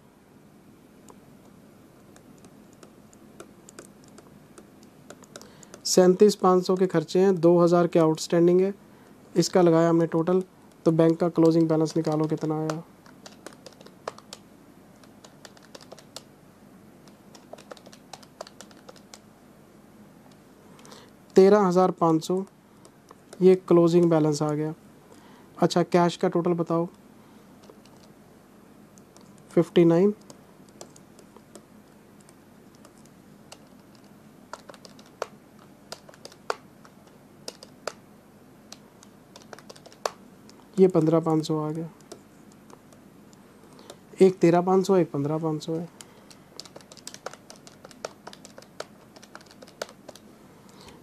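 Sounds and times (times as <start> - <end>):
calculator keys clicking: 2.1 - 6.9, 10.2 - 14.4, 15.0 - 16.3, 17.1 - 19.2, 32.2 - 38.0, 38.7 - 43.0, 45.7 - 50.2.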